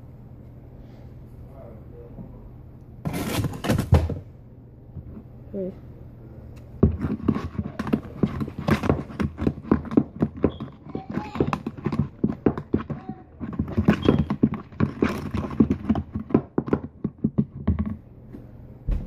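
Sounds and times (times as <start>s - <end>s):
rapid knocks and clicks: 6.8s - 18.0s.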